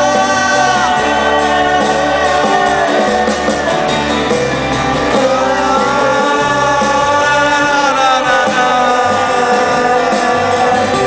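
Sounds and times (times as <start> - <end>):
acoustic guitar: 0.0 - 11.0
drums: 0.0 - 11.0
electric bass guitar: 0.0 - 11.0.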